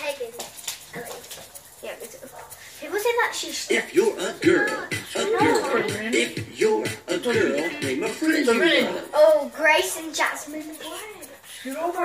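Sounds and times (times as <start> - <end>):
quiet children's voices: 0.0 - 6.4.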